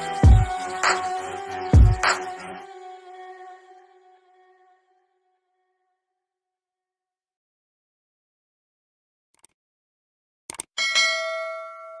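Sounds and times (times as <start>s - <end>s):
quick clicks: 10.5s - 10.7s
bell ringing: 10.8s - 12.0s.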